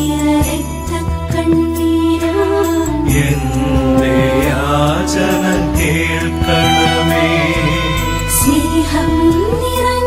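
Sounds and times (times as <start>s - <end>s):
held accompaniment: 3.0s - 9.6s
person singing a hymn: 3.1s - 9.0s.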